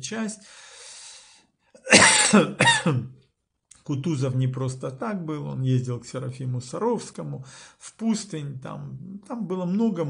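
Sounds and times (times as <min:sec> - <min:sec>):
man clearing his throat: 0:01.8 - 0:03.1.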